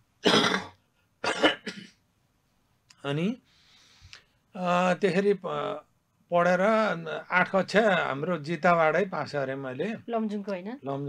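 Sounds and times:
man coughing: 0:00.2 - 0:02.0.

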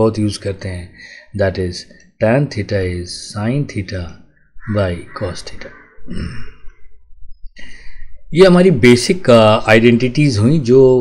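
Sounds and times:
man breathing: 0:07.6 - 0:08.3.

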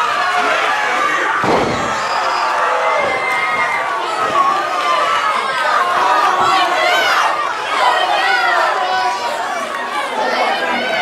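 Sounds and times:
crowd voices: 0:00.0 - 0:11.0
body slamming onto wrestling ring: 0:01.4 - 0:02.0.

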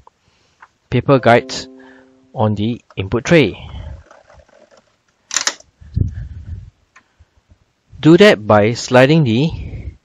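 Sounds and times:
sharp plastic clack: 0:04.1 - 0:05.7.

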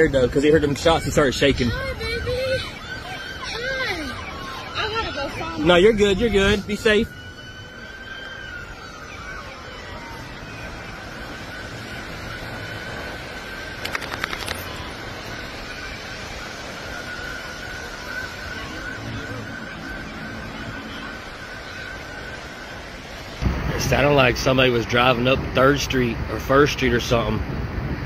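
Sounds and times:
distant emergency siren: 0:00.0 - 0:28.0
outdoor beach noise: 0:00.0 - 0:28.0.

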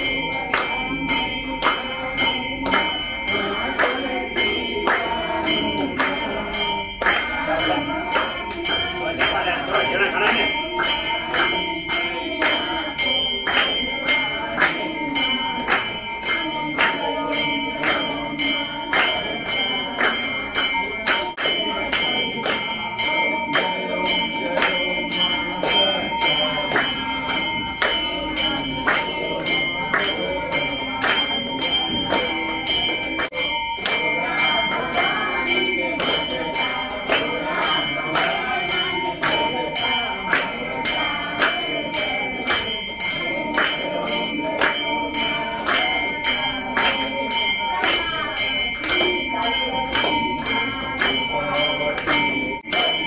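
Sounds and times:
bells ringing: 0:00.0 - 0:53.0
people clapping to a beat: 0:00.0 - 0:53.0
people singing: 0:00.0 - 0:53.0.

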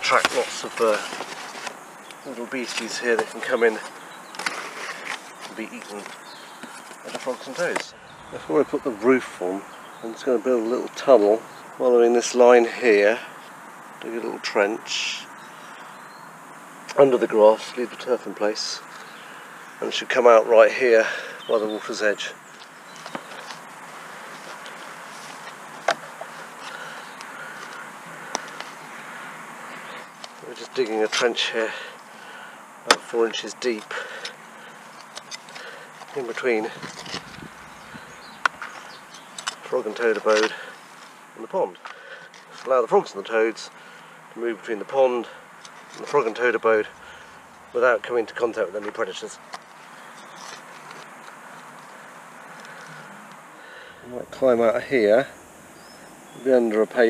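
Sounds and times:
hand trowel digging soil: 0:00.0 - 0:07.9, 0:35.0 - 0:37.5
steady background hiss: 0:00.0 - 0:57.0.

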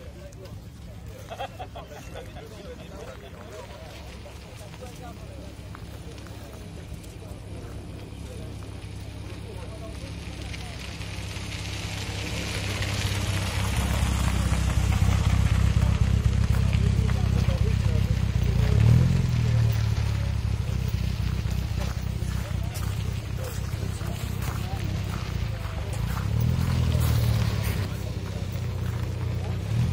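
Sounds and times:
car engine running: 0:03.0 - 0:29.9.

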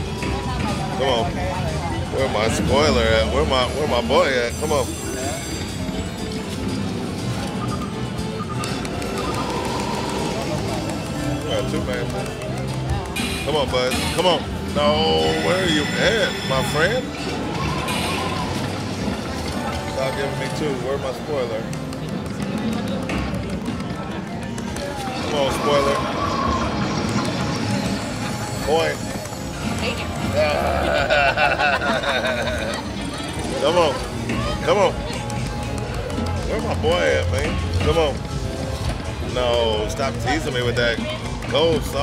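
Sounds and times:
casino background noise: 0:00.0 - 0:42.0
slot machine music and effects: 0:00.0 - 0:42.0.

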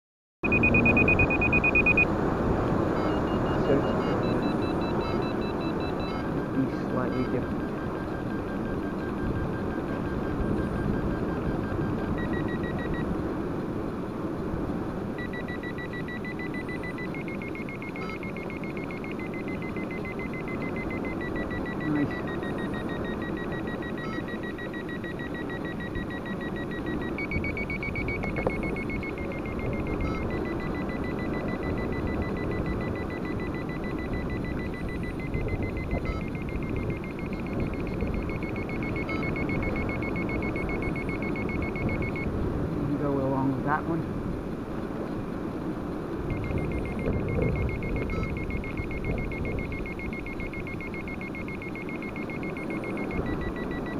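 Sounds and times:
pulsed electronic beeping tone: 0:00.4 - 0:02.1, 0:02.9 - 0:13.1, 0:15.2 - 0:42.3, 0:46.3 - 0:53.9
wind on microphone: 0:27.3 - 0:43.0, 0:46.2 - 0:50.6.

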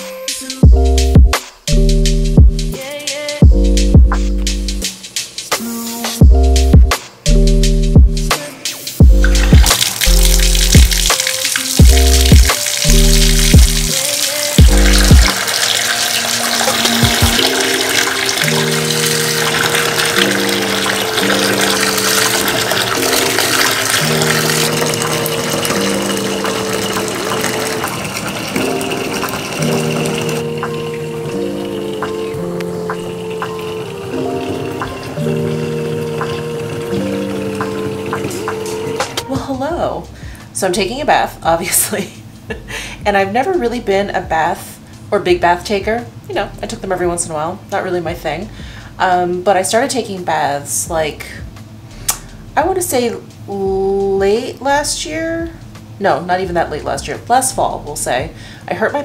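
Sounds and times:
background music: 0:00.0 - 0:59.0
water running into bathtub: 0:09.0 - 0:39.3.

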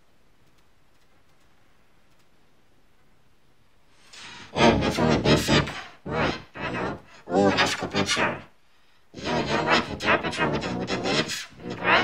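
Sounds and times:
pitch-shifted layered voice: 0:04.2 - 0:08.5, 0:09.1 - 0:12.0.

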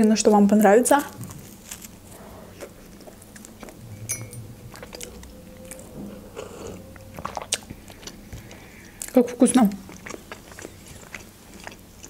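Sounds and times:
person chewing bread: 0:00.3 - 0:03.8, 0:04.7 - 0:12.0.

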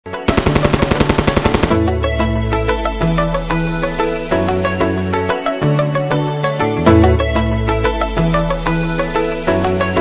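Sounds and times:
music intro: 0:00.2 - 0:10.0
rapid machine-gun fire: 0:00.3 - 0:02.7.

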